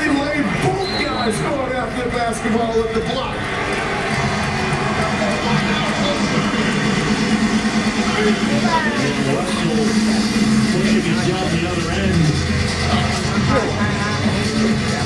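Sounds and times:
indistinct voices: 3.0 - 15.0
background music: 3.4 - 15.0
steady low hum: 4.0 - 15.0.

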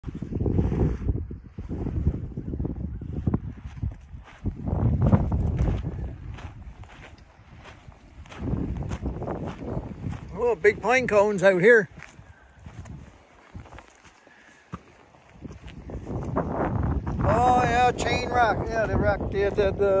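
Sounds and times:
wind buffeting microphone: 0.0 - 20.0
footsteps on gravelly ground: 3.4 - 20.0.

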